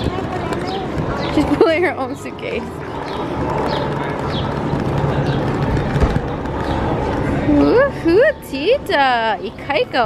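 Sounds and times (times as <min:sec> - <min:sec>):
suitcase wheels rolling on concrete: 0:00.0 - 0:10.0.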